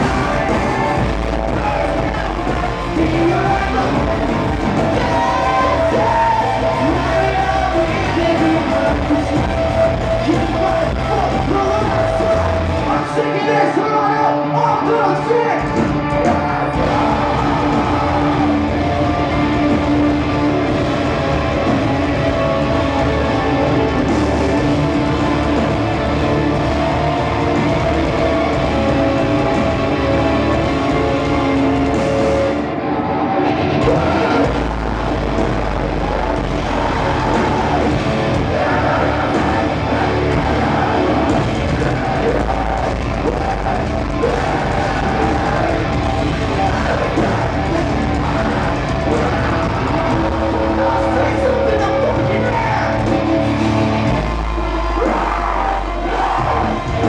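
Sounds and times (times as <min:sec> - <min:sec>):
deep bass: 0:00.0 - 0:12.9, 0:15.8 - 0:32.6, 0:33.5 - 0:57.0
heavy rock band playing live: 0:00.0 - 0:57.0.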